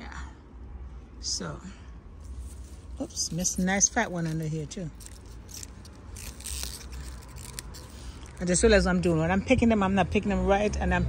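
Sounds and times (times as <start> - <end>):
leaves rustling: 2.2 - 8.5.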